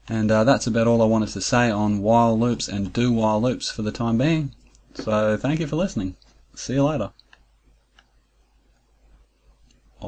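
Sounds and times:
computer mouse clicks: 7.2s - 8.9s.

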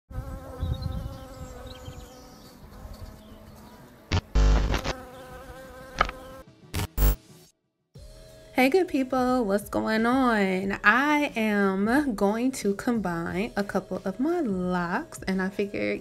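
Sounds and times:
cartoon bee buzzing: 0.1s - 3.5s, 4.1s - 7.2s.

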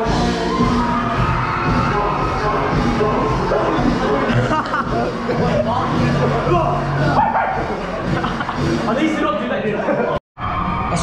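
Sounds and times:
background music: 0.0s - 11.0s
young men talking and calling out: 1.4s - 10.2s.

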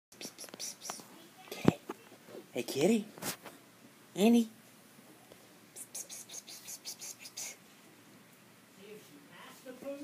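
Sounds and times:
person whispering to cat: 0.1s - 1.8s, 5.8s - 7.6s.

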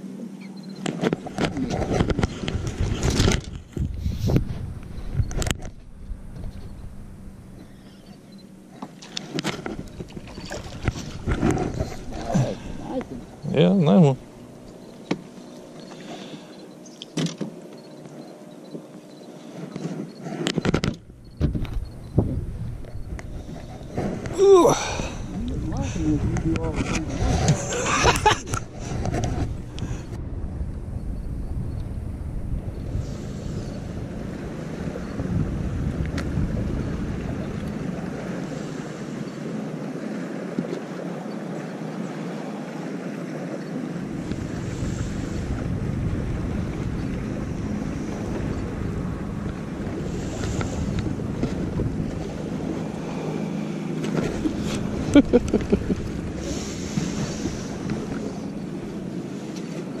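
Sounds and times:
water lapping around boat: 0.0s - 60.0s
wind buffeting microphone: 1.1s - 8.5s, 9.6s - 14.9s, 20.6s - 41.4s, 42.2s - 60.0s.

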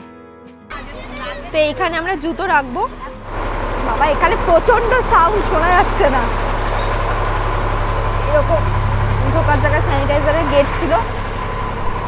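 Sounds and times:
high whine: 0.7s - 12.0s
machine drone with deep hum: 0.7s - 12.0s.

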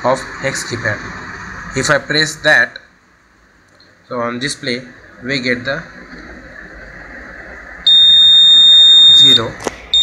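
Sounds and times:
high-pitched alarm buzzer: 7.9s - 10.0s.

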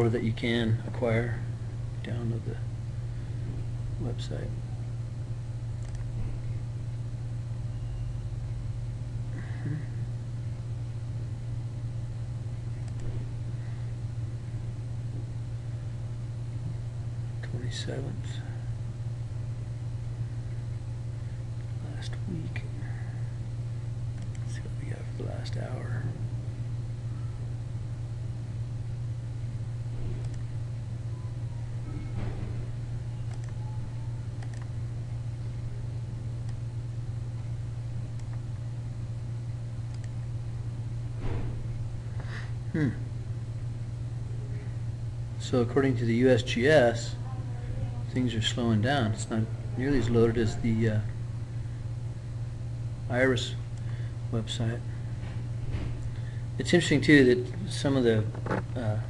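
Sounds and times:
steady low hum: 0.0s - 59.0s
faint click: 5.8s - 6.1s, 12.8s - 13.1s, 33.3s - 33.6s, 34.4s - 34.7s, 39.9s - 40.1s.

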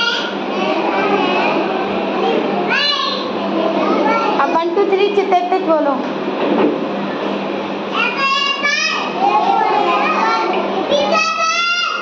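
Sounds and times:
murmur of young children: 0.0s - 12.0s
steady low hum: 0.0s - 12.0s
small child's high-pitched voice: 2.2s - 4.4s, 7.9s - 12.0s.

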